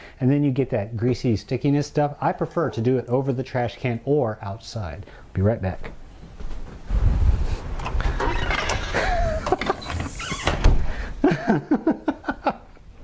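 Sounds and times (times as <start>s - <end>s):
wind buffeting microphone: 6.9s - 8.2s
knocks and rustling: 7.6s - 11.0s
man laughing: 8.8s - 9.9s, 11.2s - 12.8s.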